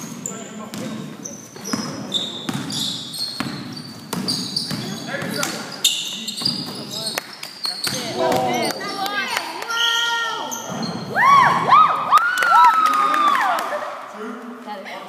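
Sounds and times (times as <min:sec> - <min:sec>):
basketball bouncing: 0:00.0 - 0:05.6
shoes squeaking on floor: 0:00.0 - 0:09.0, 0:09.7 - 0:11.2.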